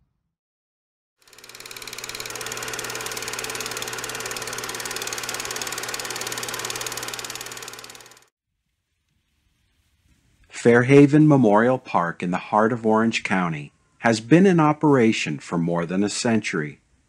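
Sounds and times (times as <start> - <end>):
film projector clattering: 1.2 - 8.3.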